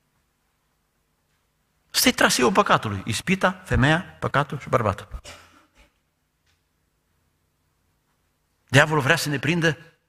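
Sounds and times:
man speaking: 1.9 - 5.3, 8.7 - 10.0.

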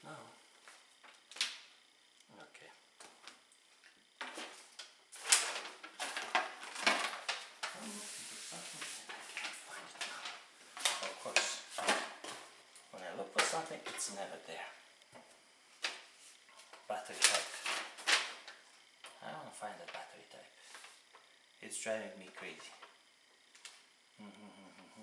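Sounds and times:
paper crinkling and rustling: 4.2 - 12.4, 17.1 - 18.6.

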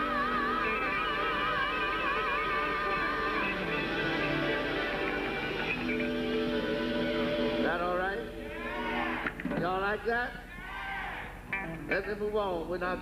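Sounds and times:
gospel quartet singing: 0.0 - 10.1.

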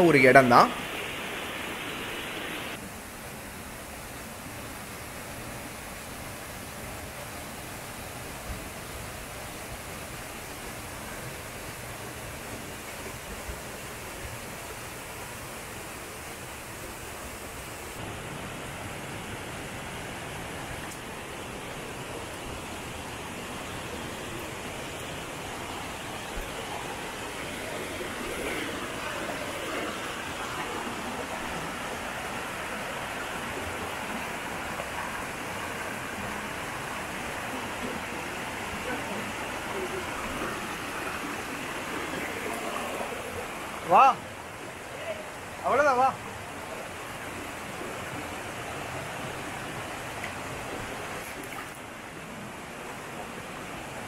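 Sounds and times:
waterfall and stream rushing: 0.0 - 54.0.

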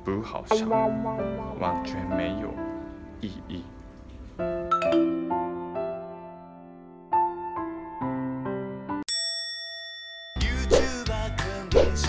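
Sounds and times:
keyboard music: 0.0 - 9.1
bright bell-like ding: 9.1 - 10.7.

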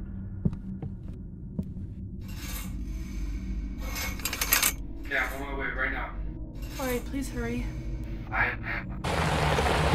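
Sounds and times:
low drone: 0.0 - 9.9.

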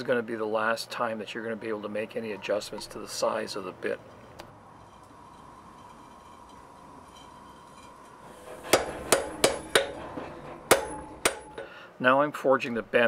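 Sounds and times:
hammer striking hot steel on anvil: 7.7 - 11.8.

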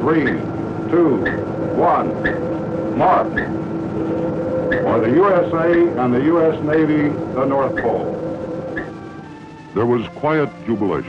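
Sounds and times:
man speaking over announcing system: 0.0 - 3.6, 4.8 - 8.5, 9.7 - 11.0
steady hum of held tones: 0.0 - 11.0.

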